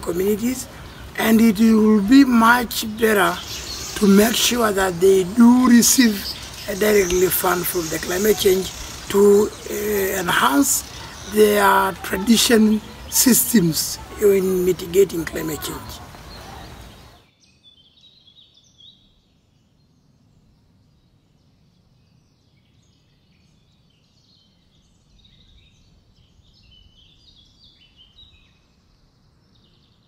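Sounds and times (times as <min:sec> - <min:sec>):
birds chirping and trilling: 0:00.0 - 0:30.0
low outdoor background: 0:00.0 - 0:30.0.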